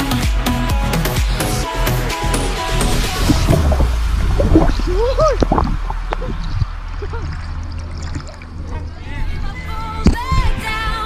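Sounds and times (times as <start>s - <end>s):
deep rumble and gurgling: 2.4s - 10.6s
river water rushing and splashing: 2.5s - 9.5s.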